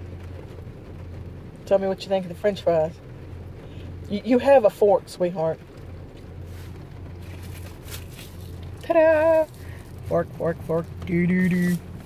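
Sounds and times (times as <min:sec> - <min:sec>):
car cabin hum: 0:00.0 - 0:12.0
faint short rustle: 0:06.4 - 0:08.9.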